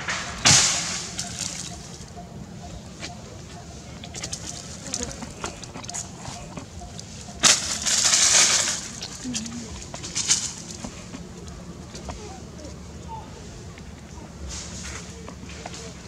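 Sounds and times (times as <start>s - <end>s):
dry leaves crunching: 0.4s - 2.1s, 3.7s - 12.5s.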